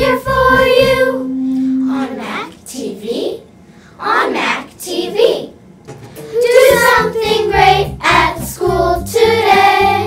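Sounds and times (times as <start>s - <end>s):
musical accompaniment with bass: 0.0s - 2.4s, 5.8s - 10.0s
children singing: 0.0s - 2.5s, 6.4s - 10.0s.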